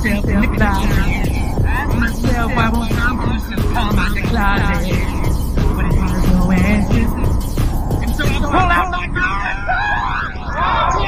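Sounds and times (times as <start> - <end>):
man singing: 0.0 - 7.4
backing music: 0.0 - 9.3
low hum: 0.0 - 10.6.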